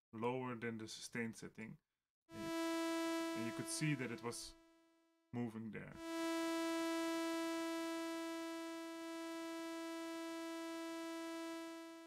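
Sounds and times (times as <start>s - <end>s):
sustained synthesizer note: 2.4s - 4.5s, 6.0s - 12.0s.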